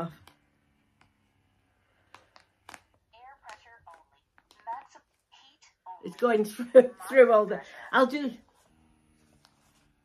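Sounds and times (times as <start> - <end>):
recorded voice prompt talking: 3.1 - 8.4.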